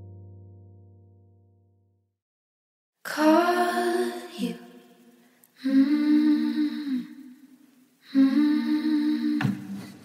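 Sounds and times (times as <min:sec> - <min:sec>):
person humming: 0:05.6 - 0:10.0.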